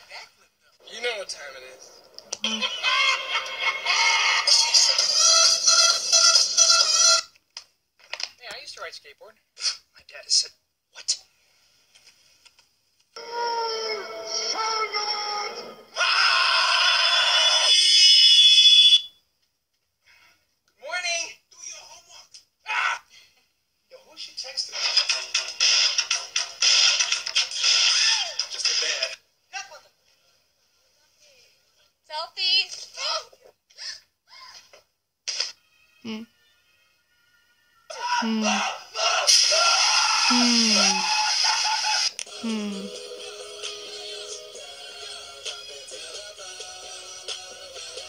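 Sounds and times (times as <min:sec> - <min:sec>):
music: 0:02.5 - 0:07.3, 0:40.7 - 0:48.0
voices: 0:38.0 - 0:39.3, 0:40.3 - 0:41.6.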